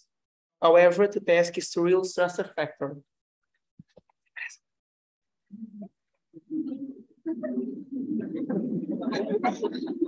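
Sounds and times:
group of people laughing: 7.2s - 10.0s.

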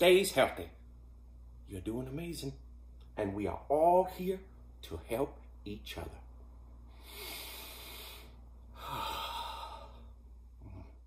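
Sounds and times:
low room hum: 0.0s - 11.0s
soft breathy sigh: 6.9s - 11.0s.

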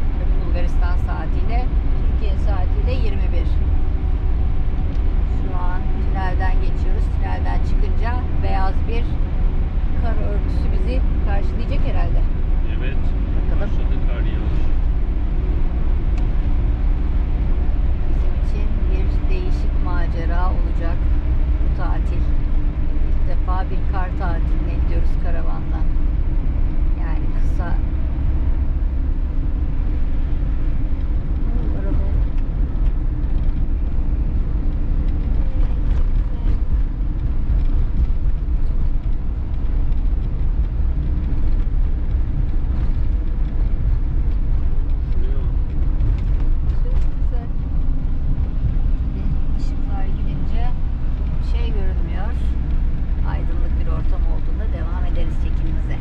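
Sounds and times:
engine and road drone: 0.0s - 56.0s.

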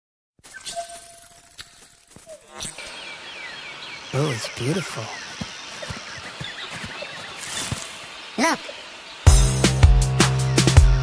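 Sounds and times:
bird chirping: 0.4s - 11.0s
steady outdoor hiss: 2.3s - 11.0s.

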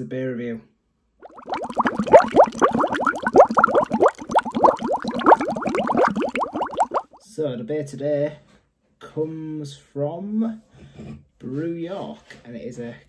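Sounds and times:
liquid bubbling and gurgling: 1.2s - 7.2s.

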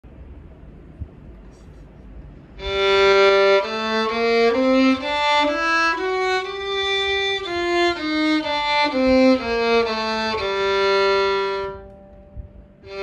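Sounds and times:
solo violin playing a scale: 2.6s - 13.0s.

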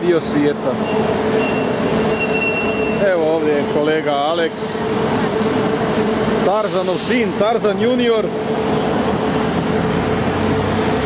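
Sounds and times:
bus engine and road noise: 0.0s - 11.0s
constant hum: 0.0s - 11.0s
high-pitched squeal: 0.8s - 4.0s.

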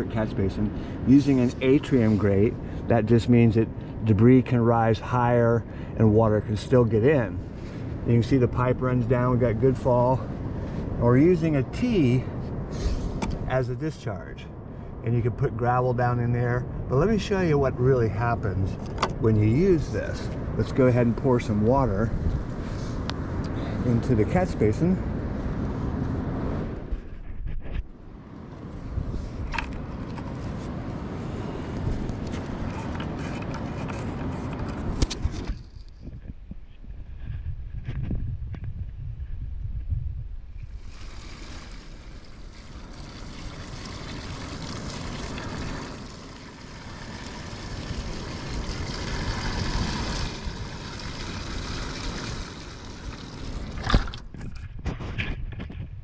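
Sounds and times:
water pouring into plastic basin: 40.7s - 54.1s
water gurgling down drain: 40.8s - 53.9s.

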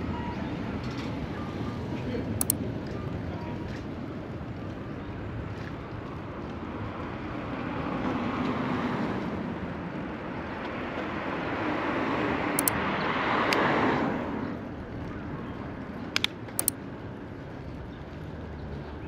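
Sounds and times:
road noise: 0.0s - 19.0s.

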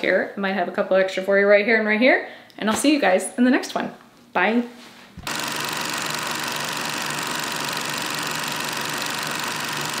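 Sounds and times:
film projector clattering: 5.2s - 10.0s.

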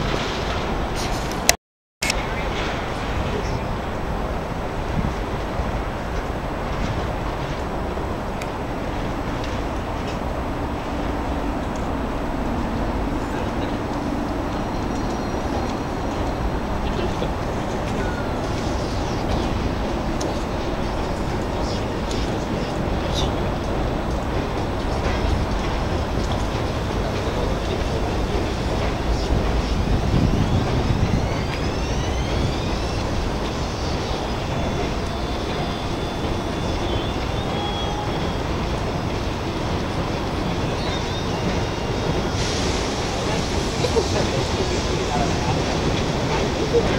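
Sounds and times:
city traffic noise: 0.0s - 46.9s.

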